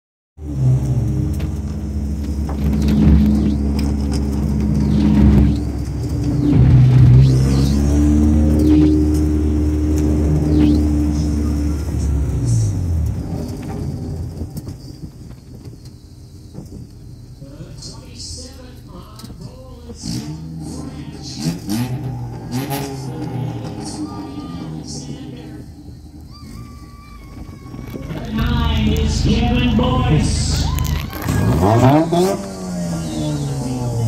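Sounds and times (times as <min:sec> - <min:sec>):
race car engine revving: 0:00.4 - 0:26.6, 0:27.4 - 0:34.0.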